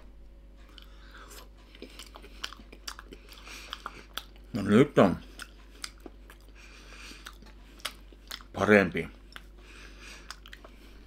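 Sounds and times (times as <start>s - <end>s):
person chewing with mouth open: 0.6s - 11.0s.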